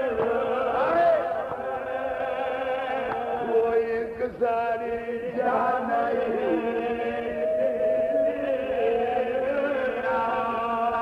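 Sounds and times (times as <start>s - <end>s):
man chanting a lament: 0.0s - 1.5s.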